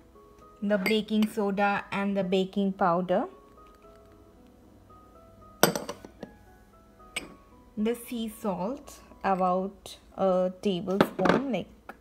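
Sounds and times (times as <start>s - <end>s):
soft background music: 0.0s - 12.0s
glass bowls clinking: 5.6s - 6.3s, 7.1s - 7.4s.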